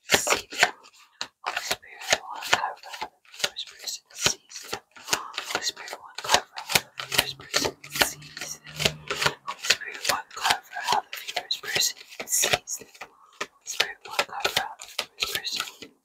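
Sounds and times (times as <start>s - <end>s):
cards shuffled by hand: 0.1s - 15.9s.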